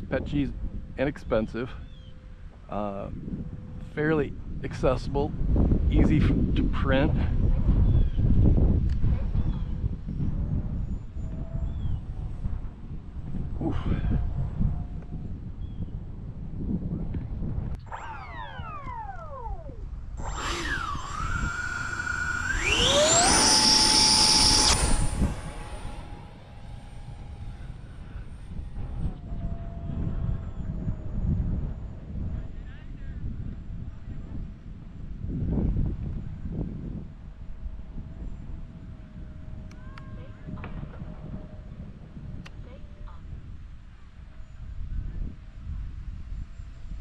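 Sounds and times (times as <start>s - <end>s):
electric ducted fan whine: 0.0s - 47.0s
wind rumbling on microphone: 0.0s - 47.0s.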